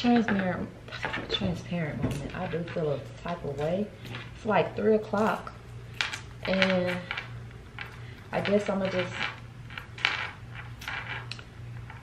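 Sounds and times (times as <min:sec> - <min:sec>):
steady low hum: 0:00.0 - 0:12.0
small items clicking on a desk: 0:05.2 - 0:12.0.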